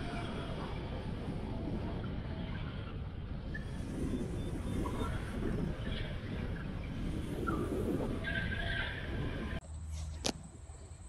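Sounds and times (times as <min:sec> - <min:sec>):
wind rushing over camera: 0:00.0 - 0:10.8.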